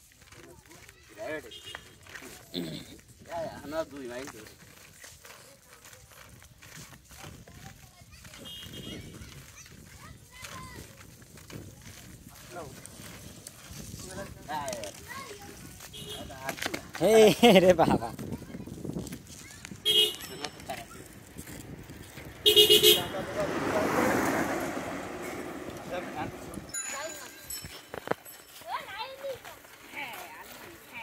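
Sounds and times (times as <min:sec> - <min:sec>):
shuffling footsteps: 0:00.0 - 0:31.0
skate wheels rolling on asphalt: 0:00.0 - 0:31.0
voices: 0:00.2 - 0:31.0
person speaking: 0:22.7 - 0:27.7.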